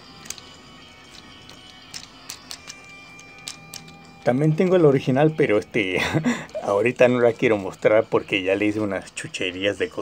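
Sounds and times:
faint background music: 0.0 - 10.0
plastic parts clicking: 0.1 - 4.8.

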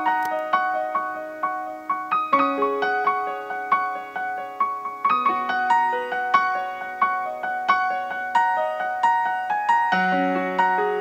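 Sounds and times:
soft piano keyboard music: 0.0 - 11.0.

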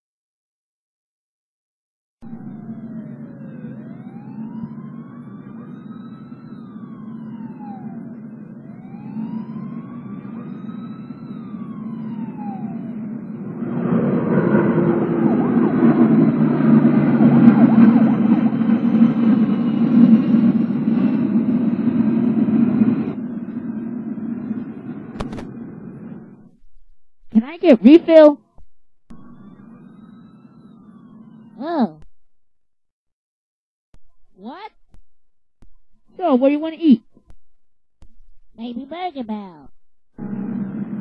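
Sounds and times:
siren wailing: 2.2 - 26.6, 27.3 - 28.4, 29.1 - 32.1, 36.0 - 37.2, 38.6 - 41.0
city traffic: 2.3 - 26.5, 27.3 - 28.5, 38.6 - 41.0.

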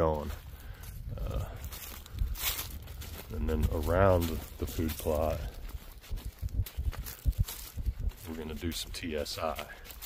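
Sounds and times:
footsteps on dry leaves: 0.0 - 10.0.

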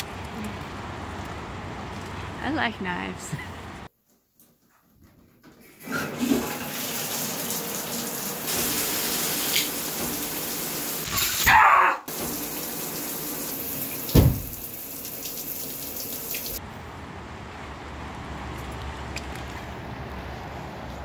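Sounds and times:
shower spray hissing: 7.0 - 11.3
person screaming: 11.2 - 12.1
low thump: 14.1 - 14.6.

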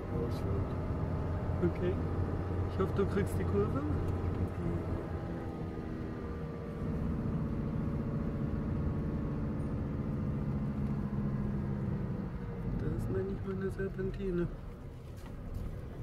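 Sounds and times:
car engine running: 0.0 - 16.0.

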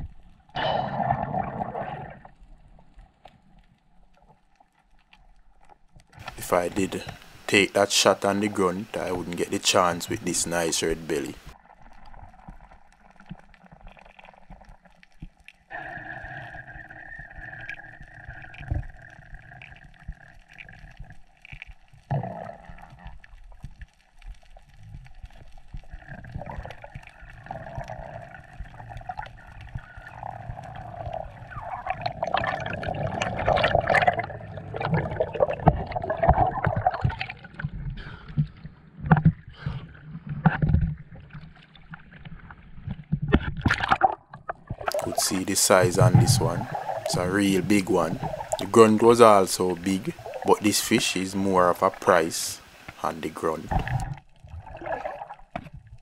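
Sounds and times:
water sloshing: 25.9 - 51.1, 53.6 - 55.9.

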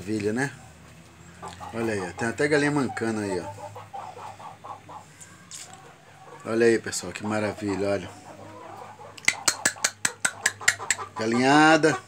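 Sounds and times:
sharp clicks: 9.2 - 11.0.

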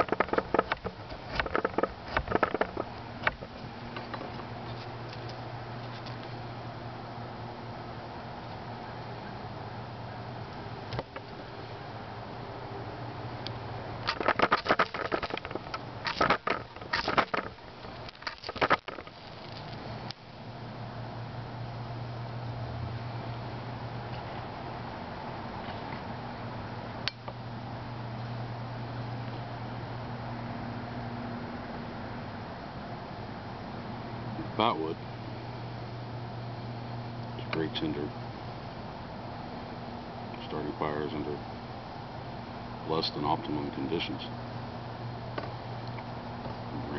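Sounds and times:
knife scraping fire steel: 14.1 - 19.8.

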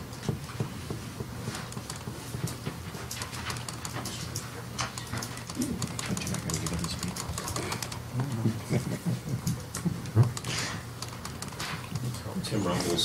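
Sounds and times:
small clicks and rustles: 1.5 - 8.4.

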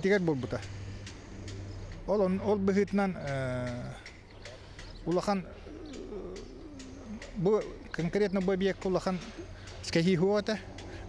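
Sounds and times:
man humming: 5.8 - 7.8.

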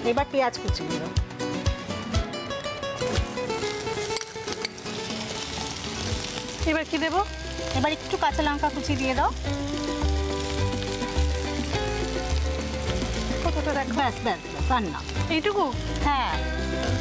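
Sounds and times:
onions sizzling in oil: 3.0 - 17.0
background music with bass line: 6.7 - 17.0.

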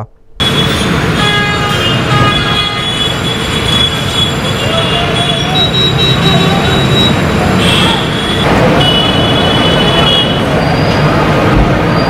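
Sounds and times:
bus engines: 0.0 - 12.0
crowd noise: 3.6 - 12.0.

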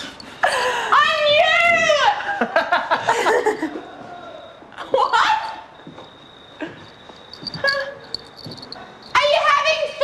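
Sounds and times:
woman shouting: 0.9 - 2.2, 9.1 - 10.0.

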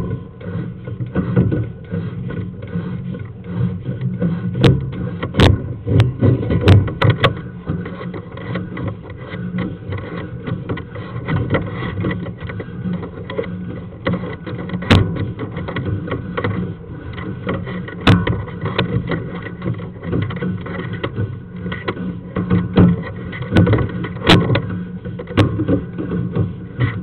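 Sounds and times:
cable scraping and rumbling in pipe: 0.0 - 27.0.

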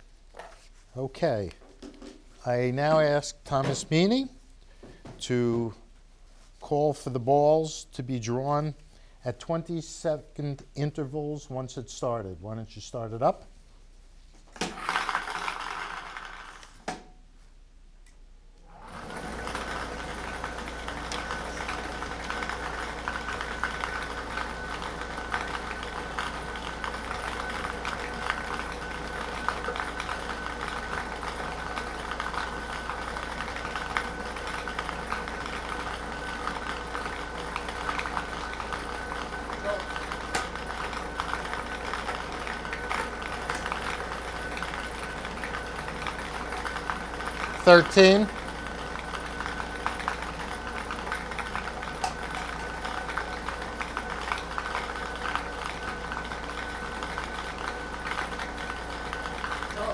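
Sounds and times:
blower hum: 13.2 - 59.9
balls rattling against plastic dome: 14.6 - 16.9.

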